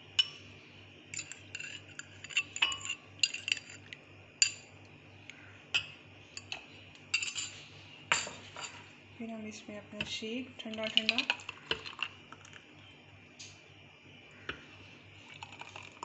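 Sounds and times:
fork clinking on glass: 0:01.2 - 0:03.8.

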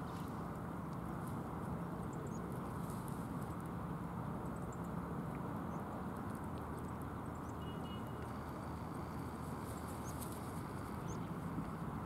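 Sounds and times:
outdoor background rush: 0:00.0 - 0:12.0
faint small ticks: 0:04.4 - 0:11.8.

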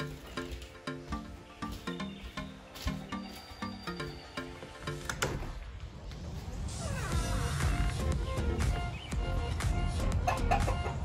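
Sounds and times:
outdoor ambience: 0:00.0 - 0:11.0.

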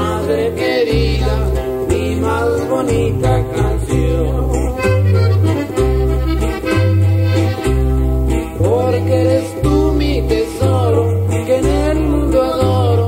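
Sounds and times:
accordion melody: 0:00.0 - 0:13.0
bass and guitar accompaniment: 0:00.0 - 0:13.0.

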